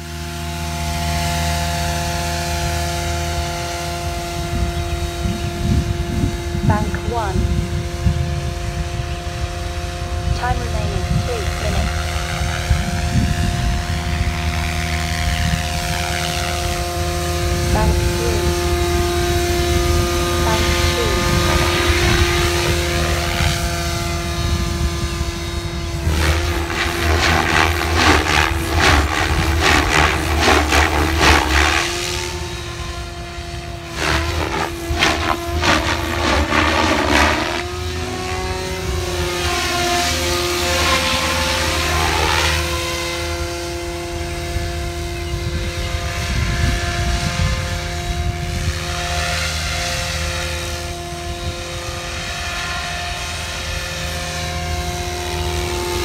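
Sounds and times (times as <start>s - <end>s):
electric motor whine: 0.0s - 56.0s
helicopter rotor-blade noise: 0.0s - 56.0s.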